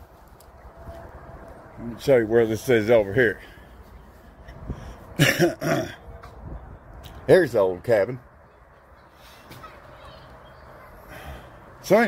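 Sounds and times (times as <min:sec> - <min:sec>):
faint outdoor background noise: 0:00.0 - 0:12.0
man speaking: 0:01.8 - 0:03.5, 0:07.2 - 0:08.2.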